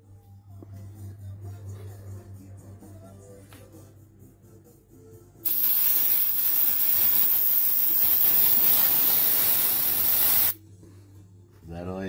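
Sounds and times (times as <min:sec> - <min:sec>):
aerosol can spraying hiss: 0:05.4 - 0:10.6.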